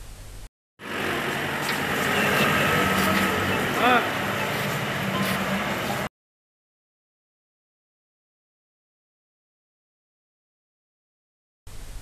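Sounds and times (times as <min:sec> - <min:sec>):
outdoor background noise: 0:00.0 - 0:06.1
vehicle engine driving away: 0:00.8 - 0:06.1
faint voices: 0:02.0 - 0:06.1.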